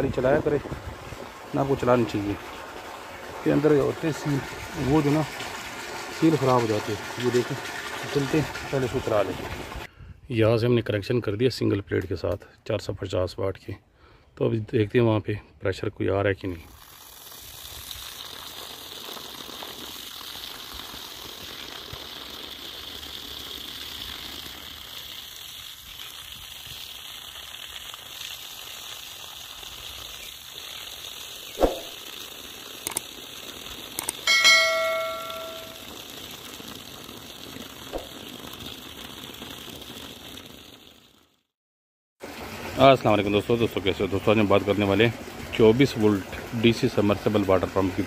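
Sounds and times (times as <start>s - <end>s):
water pouring onto grass: 0.0s - 9.9s, 16.4s - 41.4s, 42.2s - 48.0s
short high ringing tone: 34.2s - 35.9s.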